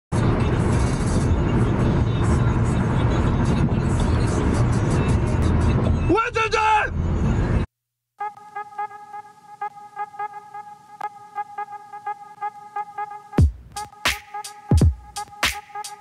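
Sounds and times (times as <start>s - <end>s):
road and wind noise in car: 0.1s - 7.7s.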